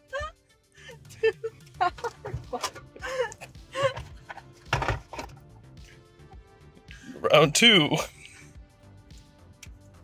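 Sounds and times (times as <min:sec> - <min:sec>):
woman laughing: 0:00.0 - 0:04.1
background music: 0:00.0 - 0:10.0.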